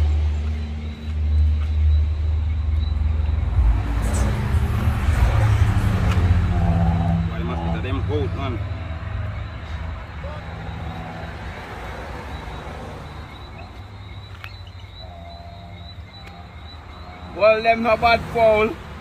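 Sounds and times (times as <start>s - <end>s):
low engine rumble: 0.0s - 19.0s
faint voices: 4.1s - 12.3s.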